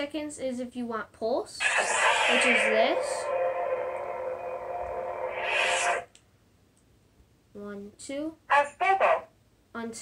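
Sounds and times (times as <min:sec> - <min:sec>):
lightsaber hum: 0:01.6 - 0:06.1
lightsaber power-down swish: 0:01.6 - 0:06.1.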